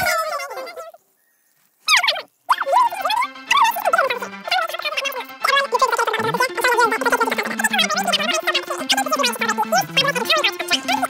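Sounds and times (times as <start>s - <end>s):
high-pitched squawky voices: 0.0s - 1.0s, 1.9s - 11.0s
sped-up music with low notes: 2.6s - 11.0s.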